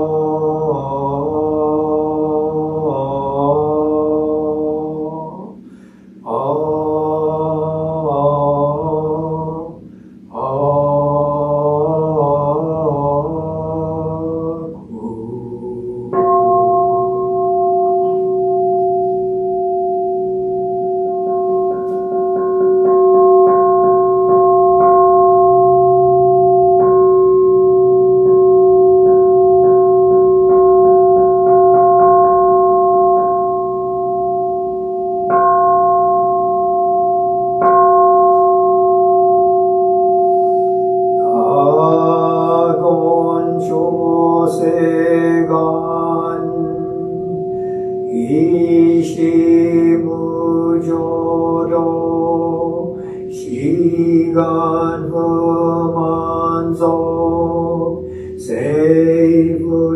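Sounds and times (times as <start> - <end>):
man chanting: 0.0 - 5.6, 6.2 - 17.2, 41.2 - 59.9
temple bell ringing: 0.0 - 59.9.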